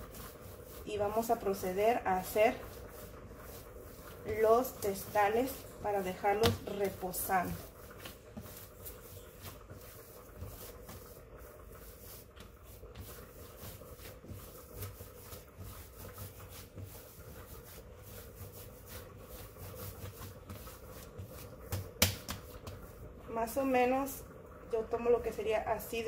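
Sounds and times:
hands kneading dough: 0.0 - 26.0.

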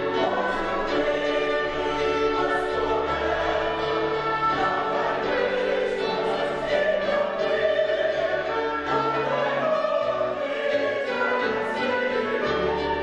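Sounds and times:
choir singing held chords: 0.0 - 13.0
instrumental accompaniment: 0.0 - 13.0.

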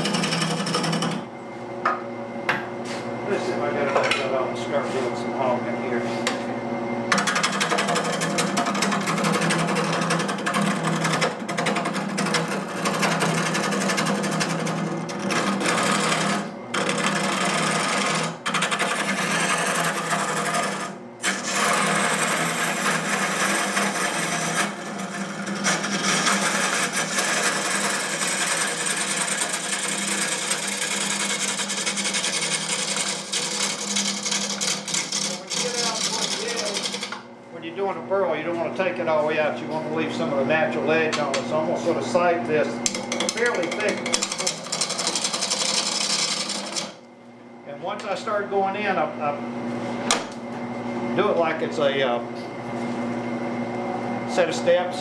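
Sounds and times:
gouge cutting spinning wood: 0.0 - 1.3, 7.1 - 37.2, 41.3 - 47.0
lathe humming: 0.0 - 55.0.

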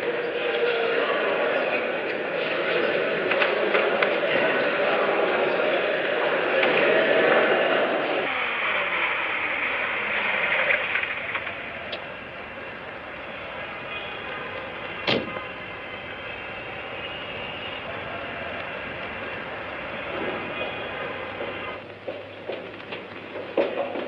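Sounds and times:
street traffic noise: 0.0 - 24.0.

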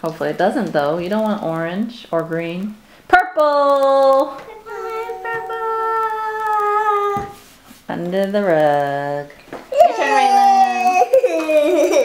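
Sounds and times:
child's voice holding a note: 4.4 - 7.4.

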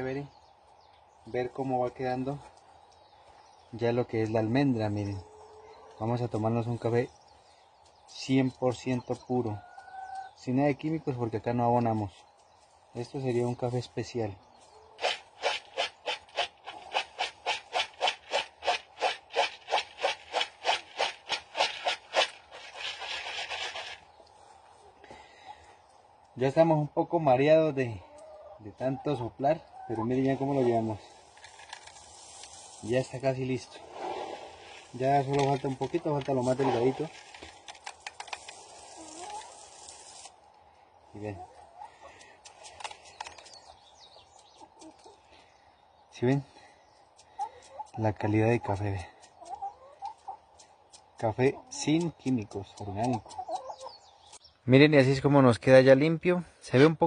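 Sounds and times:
coffee beans rattling in plastic bowl: 15.4 - 24.0, 31.3 - 32.8, 34.3 - 40.2
soft hiss: 30.0 - 49.4
beans swishing in plastic bowl: 30.6 - 33.2.

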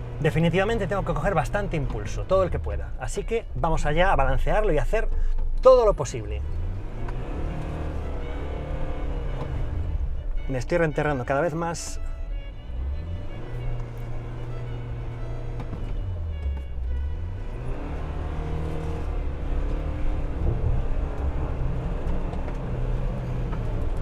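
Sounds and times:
car engine revving: 0.0 - 24.0
background music: 6.4 - 22.0.

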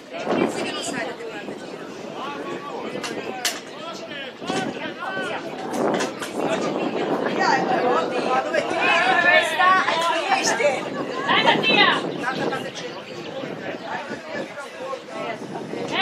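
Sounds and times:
voices chattering and calling out: 0.0 - 16.0.

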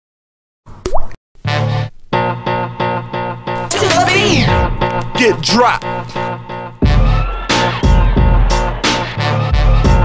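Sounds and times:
pop with upward pitch sweep: 0.8 - 1.2.

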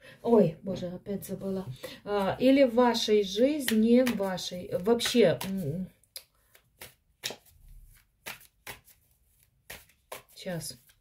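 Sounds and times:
cards rustling: 3.6 - 11.0.

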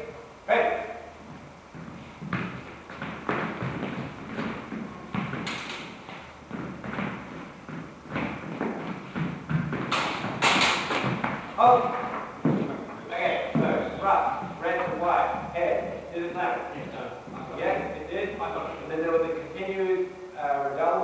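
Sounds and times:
footsteps and thuds on hard floor: 1.2 - 12.8.

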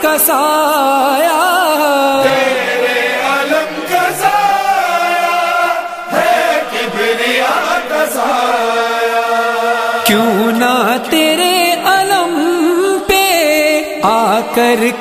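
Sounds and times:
men chanting a devotional song: 0.0 - 15.0.

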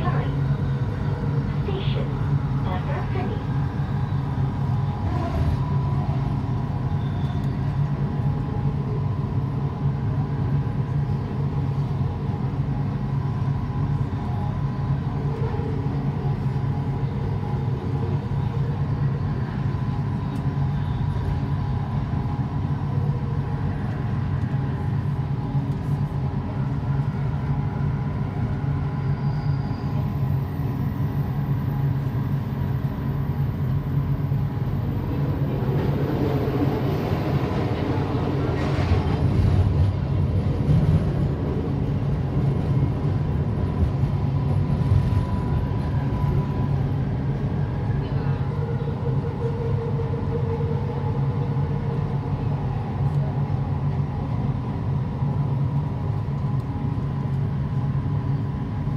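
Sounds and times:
train low hum: 0.0 - 58.9
wheel and rail noise: 0.0 - 58.9.

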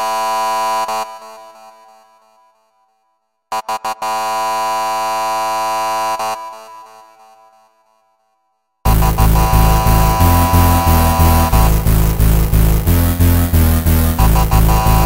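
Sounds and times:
synthesized buzzing ringtone: 8.9 - 12.1.

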